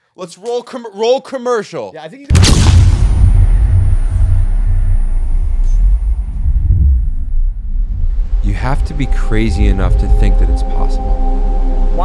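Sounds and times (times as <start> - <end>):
deep cinematic rumble: 2.4 - 12.0
thin high whine: 3.0 - 6.6.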